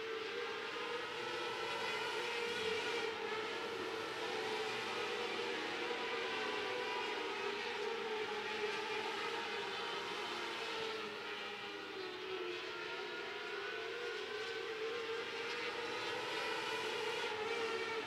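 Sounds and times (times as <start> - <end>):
racing car engines wailing: 0.0 - 18.0.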